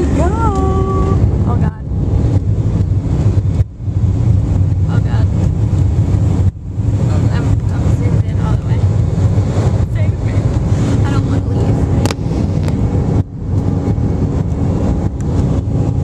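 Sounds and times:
jet engines rumbling in cabin: 0.0s - 16.0s
wind buffeting microphone: 0.0s - 16.0s.

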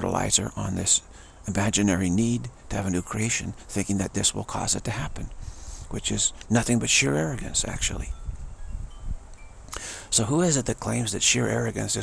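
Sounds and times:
chimes ringing: 0.1s - 1.0s, 8.0s - 11.1s.

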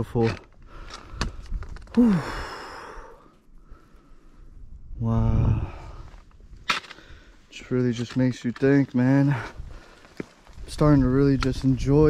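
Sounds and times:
man sighing: 1.8s - 3.3s, 5.0s - 6.2s.

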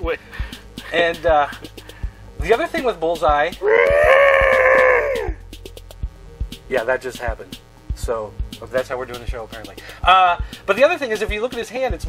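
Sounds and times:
faint background music: 0.0s - 12.0s
loud high-pitched cry: 3.6s - 5.4s.

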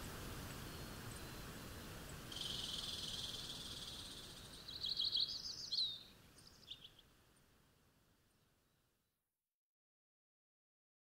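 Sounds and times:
nature ambience: 0.0s - 9.2s
songbird trilling and chirping: 2.3s - 7.0s.

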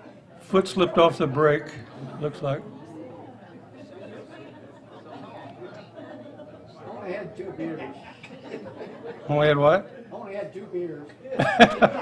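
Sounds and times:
people chattering quietly: 0.0s - 12.0s.

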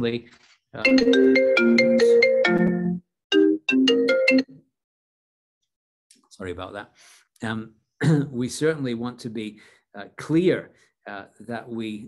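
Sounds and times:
phone ringtone chime melody: 0.9s - 4.5s.

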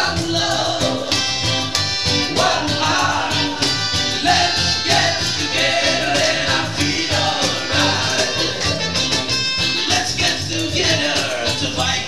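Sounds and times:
acoustic guitar: 0.0s - 12.0s
acoustic reggae band: 0.0s - 12.0s.

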